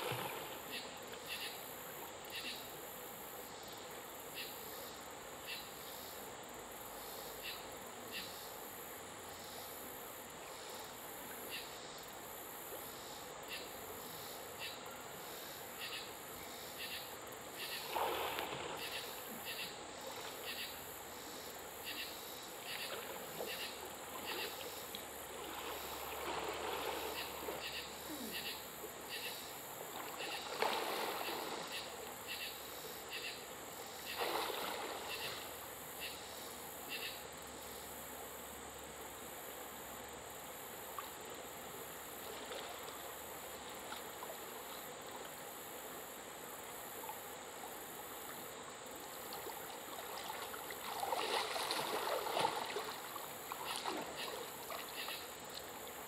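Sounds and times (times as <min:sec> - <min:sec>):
insects droning: 0:00.0 - 0:56.0
person splashing while swimming: 0:30.0 - 0:31.8, 0:34.1 - 0:35.2, 0:49.3 - 0:55.0.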